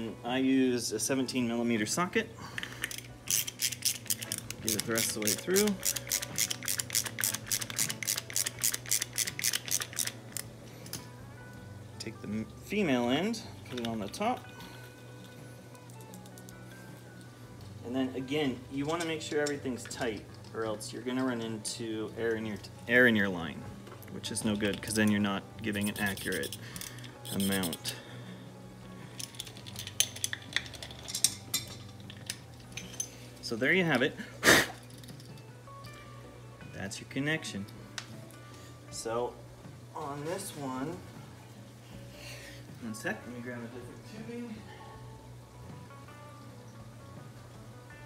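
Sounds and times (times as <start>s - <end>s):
socket ratchet clicking: 2.8s - 11.0s, 25.7s - 27.9s.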